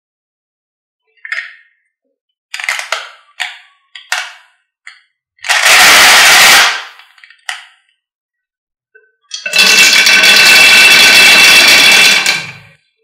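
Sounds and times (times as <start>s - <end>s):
marbles rattling in a cup: 9.4s - 12.6s.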